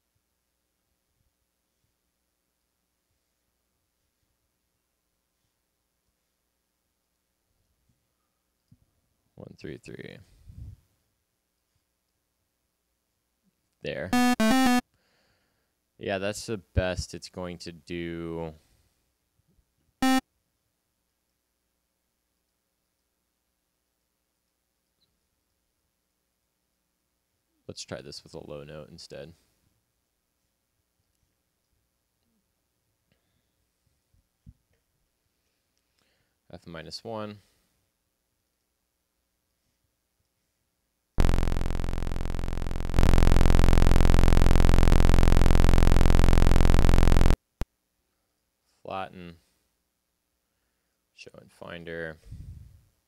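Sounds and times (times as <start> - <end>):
buzzy low synthesizer note: 14.2 - 14.8, 41.2 - 47.4.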